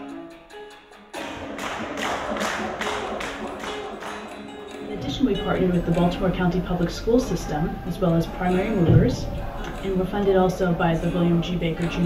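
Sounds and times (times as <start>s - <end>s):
music: 0.0s - 12.0s
people clapping in rhythm: 1.2s - 6.8s.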